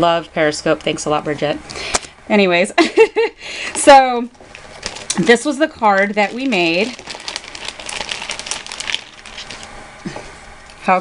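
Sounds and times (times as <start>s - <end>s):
paper crinkling and rustling: 4.4s - 9.8s.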